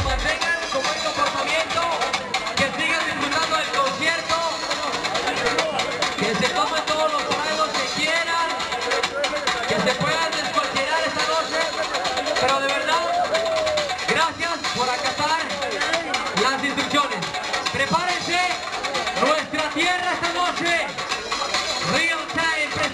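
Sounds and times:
man talking through pa system: 0.0s - 1.7s
music playing: 0.0s - 22.9s.

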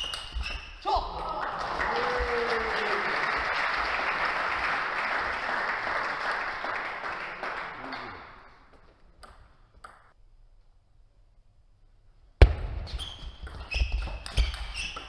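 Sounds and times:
crowd applauding: 1.1s - 8.6s.

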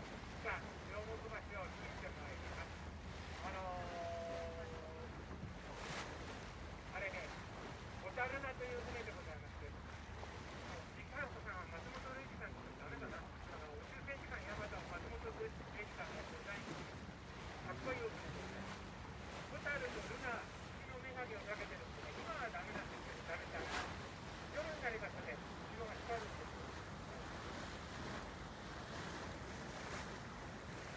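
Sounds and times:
boat engine drone: 0.0s - 30.9s
water noise: 0.0s - 30.9s.

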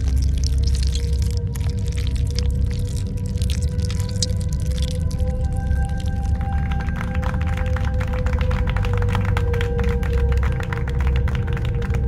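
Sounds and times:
deep low rumble: 0.0s - 12.0s
small group clapping: 4.6s - 12.0s
music score of held tones: 5.0s - 12.0s.

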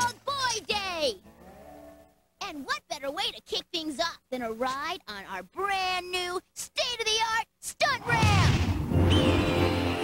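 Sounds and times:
cartoon voice sing-song exclamation: 2.4s - 8.5s.

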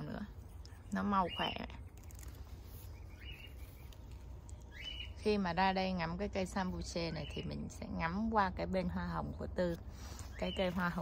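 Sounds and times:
bird chirps: 2.7s - 5.4s.

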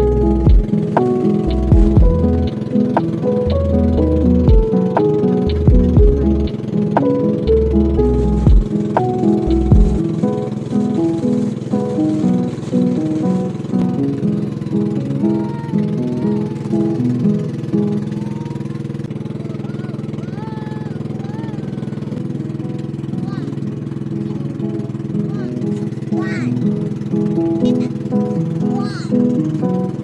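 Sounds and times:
background music: 0.0s - 19.2s
boat engine droning: 0.0s - 30.0s.

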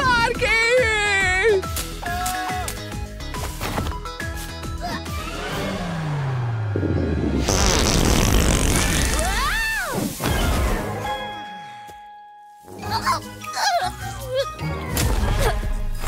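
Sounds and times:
background music: 0.0s - 16.0s
cartoon fart blast: 7.4s - 10.5s.

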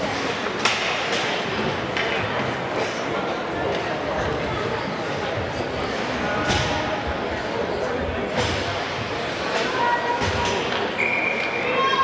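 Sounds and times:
spectators' voices in echoing arena: 0.0s - 12.0s.

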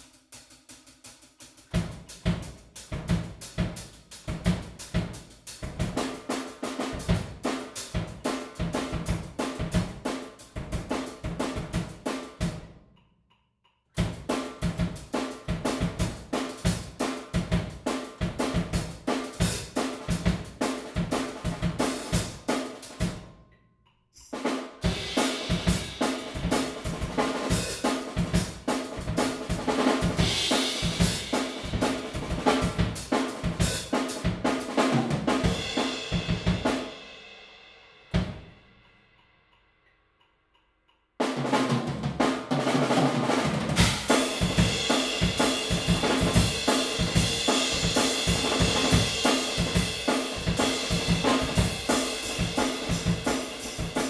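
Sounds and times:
drum kit playing fast beat: 0.0s - 12.7s, 14.0s - 23.2s, 24.4s - 38.7s, 41.2s - 54.0s.

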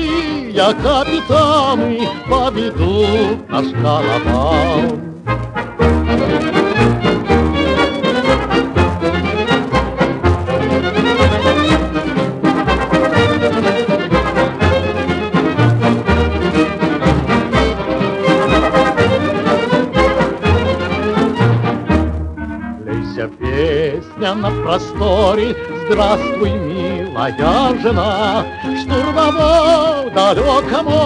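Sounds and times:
jazz orchestra on old record: 0.0s - 31.0s.

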